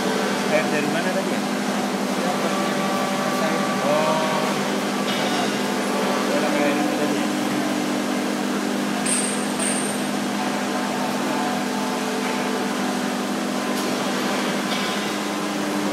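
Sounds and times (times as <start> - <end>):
pump motor hum: 0.0 - 15.9.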